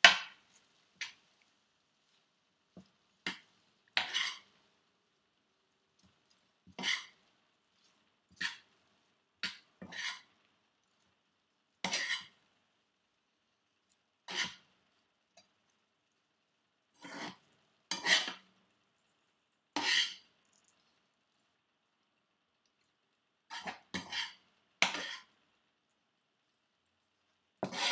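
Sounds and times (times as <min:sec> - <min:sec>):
spatula scraping a skillet: 0:00.0 - 0:01.4, 0:02.0 - 0:04.7, 0:06.0 - 0:10.5, 0:11.8 - 0:12.5, 0:14.2 - 0:15.5, 0:16.9 - 0:18.6, 0:19.7 - 0:20.4, 0:23.5 - 0:25.4, 0:27.6 - 0:27.9.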